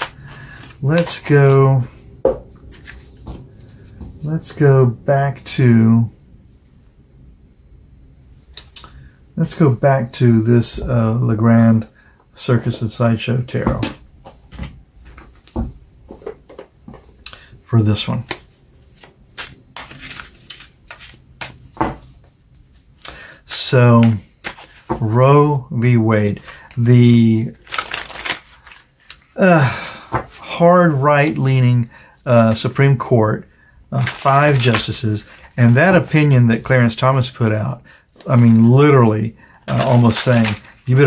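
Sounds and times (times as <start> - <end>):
cards tapping and rubbing: 24.0 - 25.0, 34.0 - 35.0, 39.7 - 41.0.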